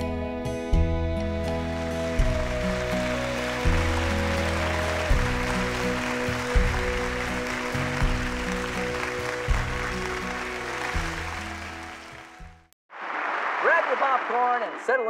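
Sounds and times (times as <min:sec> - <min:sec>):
country band music: 0:00.2 - 0:12.2
audience applause: 0:01.8 - 0:15.0.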